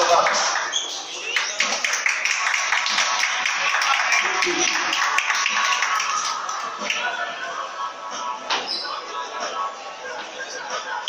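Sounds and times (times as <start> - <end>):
audience clapping: 0.0 - 7.1
crowd voices: 0.0 - 11.0
music playing: 1.2 - 11.0.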